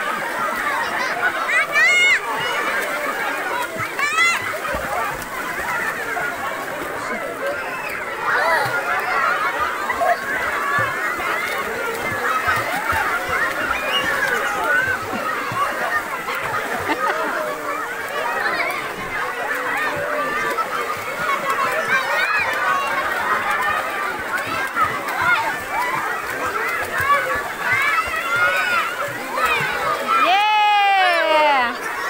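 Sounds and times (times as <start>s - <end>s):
children and adults chattering: 0.0s - 32.0s
water sloshing and splashing: 0.0s - 32.0s.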